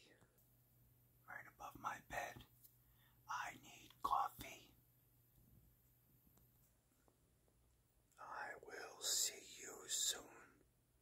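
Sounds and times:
faint steady hum: 0.0s - 11.0s
man whispering: 1.2s - 2.6s, 3.2s - 4.8s, 8.1s - 10.7s.

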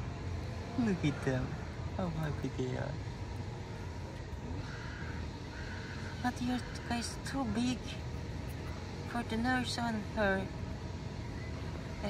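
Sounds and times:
low background rumble: 0.0s - 12.0s
crow cawing: 3.6s - 7.5s.

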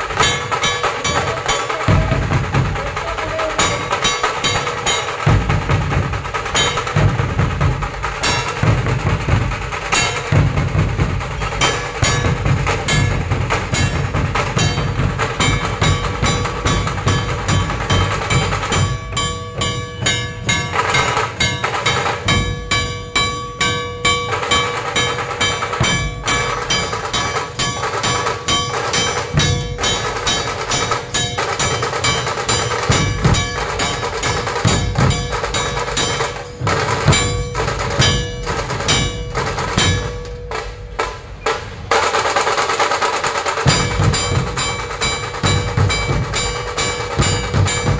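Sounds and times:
dhol drums beating fast rhythm: 0.0s - 47.9s.

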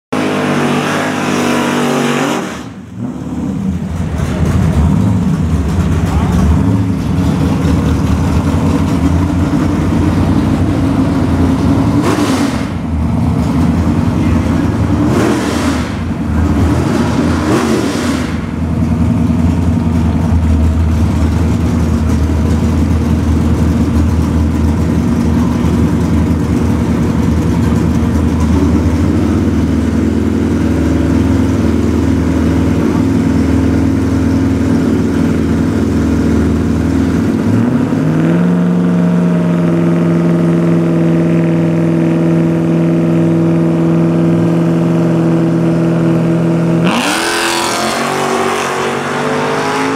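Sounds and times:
car engine idling and revving: 0.1s - 49.9s.

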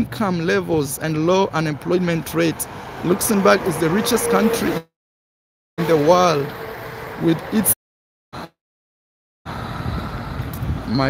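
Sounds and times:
person speaking: 0.0s - 4.8s
road traffic: 0.0s - 5.0s, 5.8s - 7.8s, 8.4s - 8.6s, 9.4s - 11.0s
wind on microphone: 9.5s - 11.0s.

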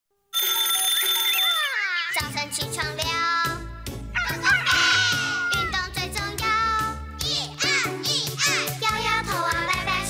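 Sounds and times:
alarm clock bell ringing: 0.4s - 1.8s.

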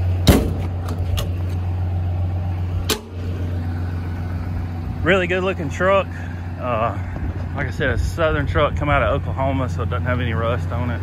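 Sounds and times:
diesel truck idling: 0.0s - 11.0s
metal compartment doors slamming: 0.2s - 1.4s.

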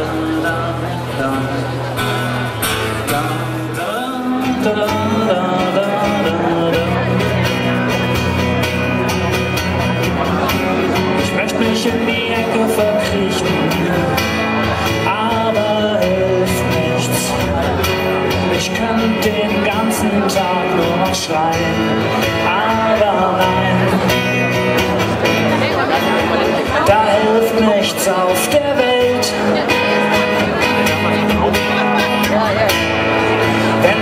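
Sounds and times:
electric guitar strumming: 0.0s - 34.0s.

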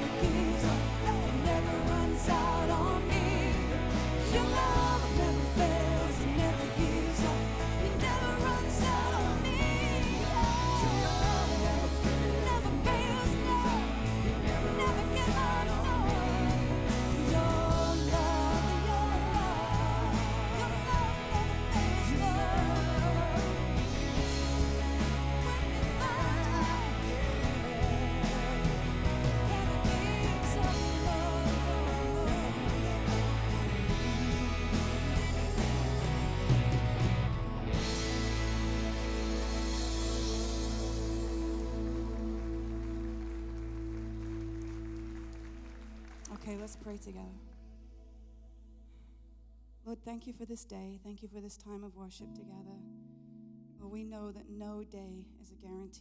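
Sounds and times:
man singing: 0.0s - 36.7s
woman singing: 0.0s - 36.8s
drum kit: 0.0s - 47.1s
bass: 0.0s - 52.9s, 53.6s - 56.0s.

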